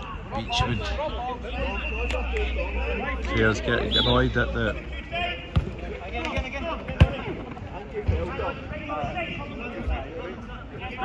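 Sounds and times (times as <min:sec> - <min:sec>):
players shouting: 0:00.0 - 0:11.0
football kicked and bouncing: 0:05.5 - 0:08.4.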